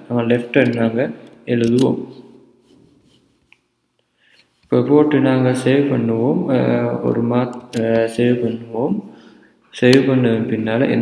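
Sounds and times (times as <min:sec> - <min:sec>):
person speaking: 0:00.0 - 0:03.2, 0:04.6 - 0:11.0.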